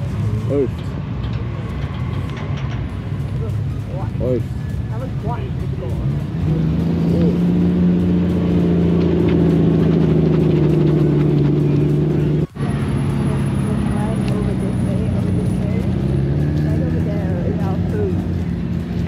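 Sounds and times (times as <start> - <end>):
car engine idling: 2.2 - 19.0.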